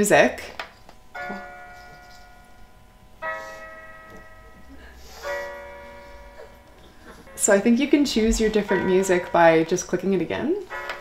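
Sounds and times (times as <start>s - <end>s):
electronic lullaby chiming notes: 1.0s - 11.0s.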